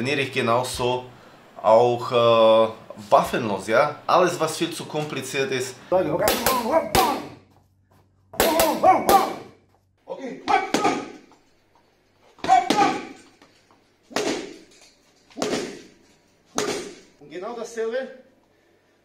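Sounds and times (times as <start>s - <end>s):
person shouting: 6.1s - 7.4s, 8.4s - 9.6s, 10.4s - 11.2s, 12.4s - 13.2s
wooden stick striking: 6.2s - 7.4s, 8.4s - 9.6s, 16.6s - 17.2s.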